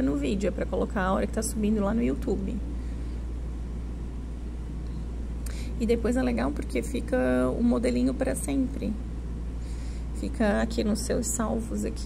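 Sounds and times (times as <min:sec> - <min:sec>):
low background rumble: 0:00.0 - 0:12.0.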